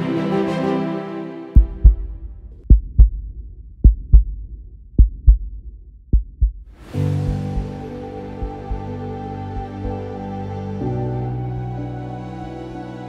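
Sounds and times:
music: 0.0s - 2.7s, 6.8s - 13.0s
slow heartbeat thumps: 1.6s - 9.0s.

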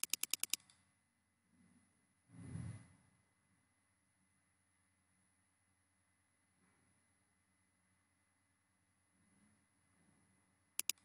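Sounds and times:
mouse scroll wheel clicking: 0.0s - 0.8s, 10.8s - 11.0s.

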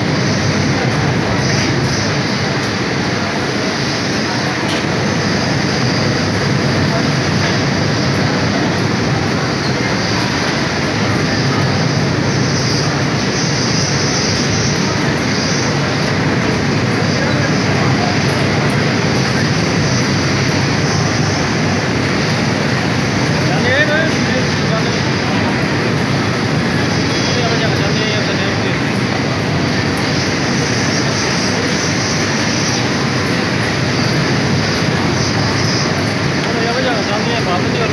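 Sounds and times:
indistinct voices: 0.0s - 37.9s.

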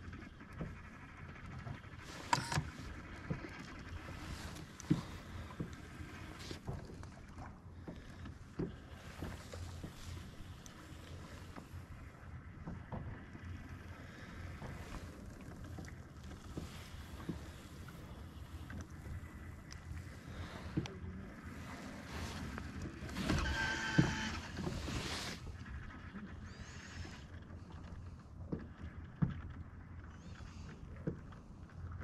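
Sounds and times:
water lapping against boat hull: 0.0s - 32.0s.

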